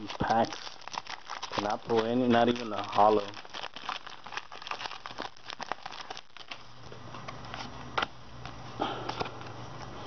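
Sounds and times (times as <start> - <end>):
foil wrapper crinkling: 0.0 - 6.9.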